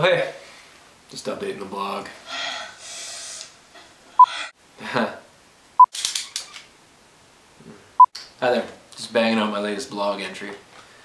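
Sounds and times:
breathy hissing: 0:02.2 - 0:04.6.

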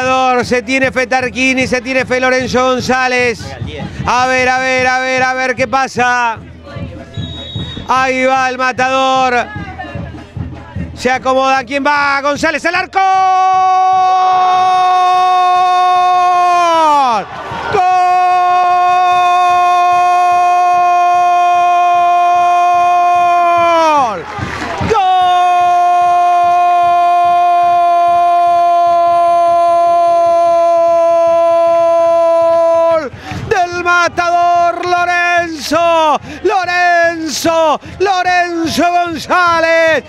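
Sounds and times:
man shouting excitedly: 0:07.9 - 0:09.5, 0:11.0 - 0:24.2, 0:24.8 - 0:40.0.

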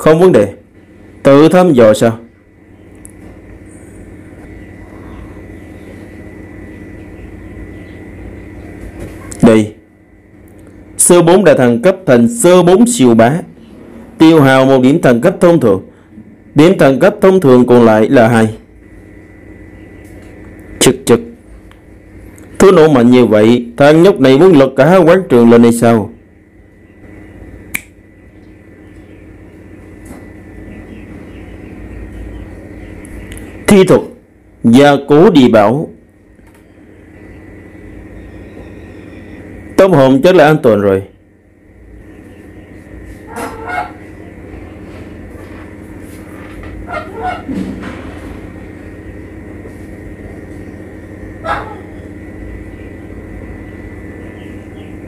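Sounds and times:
low engine-like drone: 0:00.0 - 0:55.0
thin high whine: 0:00.0 - 0:55.0
sharp click: 0:27.7 - 0:28.0.

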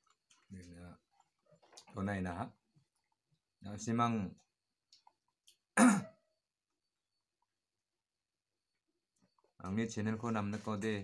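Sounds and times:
man clearing his throat: 0:05.8 - 0:06.2.

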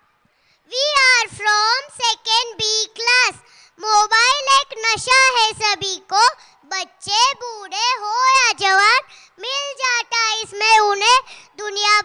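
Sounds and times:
child's sing-song voice: 0:00.7 - 0:12.0.

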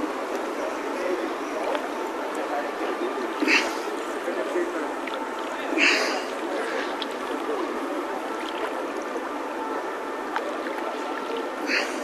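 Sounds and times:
river water splashing: 0:00.1 - 0:12.0.

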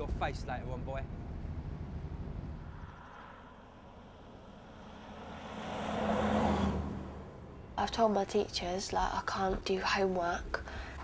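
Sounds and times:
car passing on wet road: 0:03.2 - 0:07.5
bus passing on wet road: 0:04.4 - 0:07.5.

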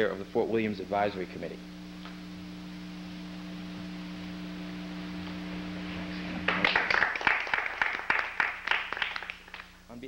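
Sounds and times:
small audience applauding: 0:06.4 - 0:09.8.

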